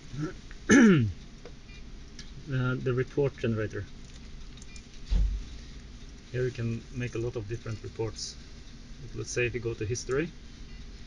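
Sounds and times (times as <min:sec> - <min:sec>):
steady low hum: 0:00.0 - 0:11.0
low thump: 0:05.1 - 0:05.5.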